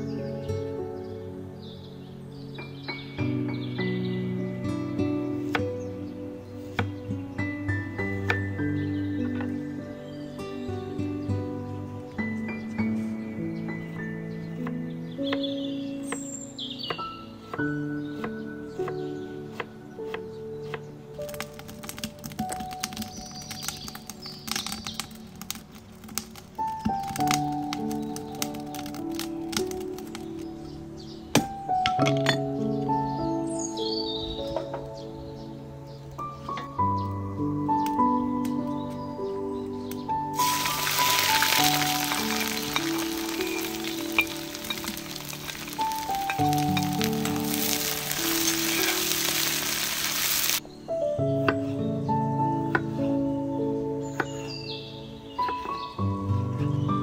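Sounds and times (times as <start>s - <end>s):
birds chirping: 0.0s - 57.0s
soft background music: 0.0s - 57.0s
wood fire crackling and popping: 21.2s - 30.6s, 40.4s - 50.6s
onion sizzling in a hot wok: 40.4s - 50.6s.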